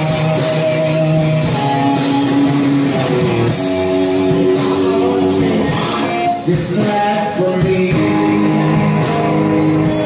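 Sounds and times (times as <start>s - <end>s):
sustained electric guitar notes: 0.0s - 6.8s
drum kit: 0.0s - 10.0s.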